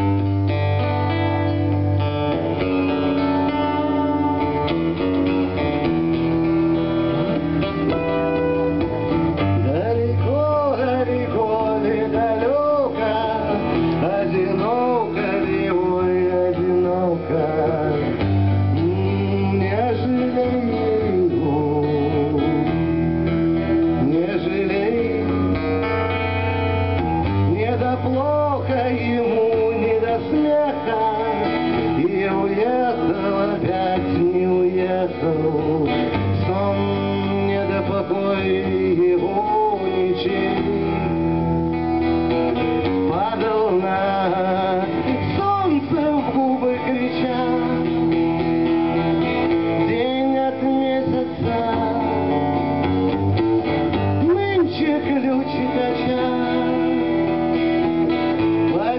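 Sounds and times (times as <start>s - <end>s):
man singing: 0.0s - 58.9s
strummed acoustic guitar: 0.0s - 58.9s.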